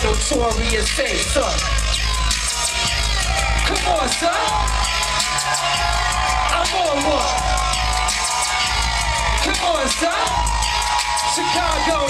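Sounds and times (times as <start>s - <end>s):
live band playing hip hop: 0.0s - 12.0s.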